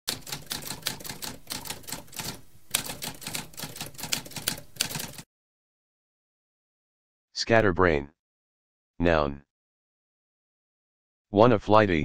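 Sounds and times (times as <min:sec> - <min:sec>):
typewriter keys clicking: 0:00.1 - 0:05.2.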